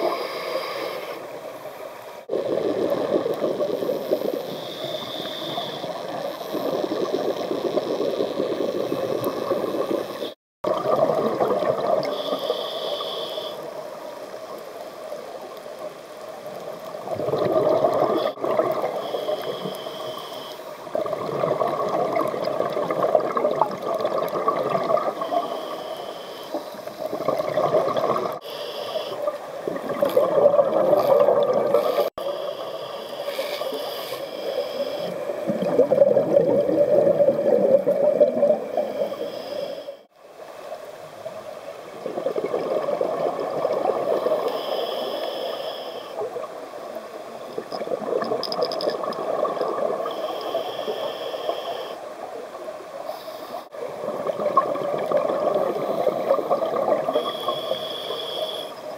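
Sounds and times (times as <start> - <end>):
regulator inhalations with hiss: 0.0 - 1.8, 3.9 - 6.9, 12.1 - 13.7, 18.2 - 20.8, 25.2 - 27.1, 28.4 - 29.4, 31.7 - 35.3, 38.8 - 40.1, 44.1 - 46.3, 50.0 - 52.1, 53.0 - 53.7, 57.1 - 58.9
bubbling regulator exhalations: 17.1 - 19.0, 20.9 - 25.4, 27.1 - 28.4, 29.7 - 32.1, 35.4 - 38.9.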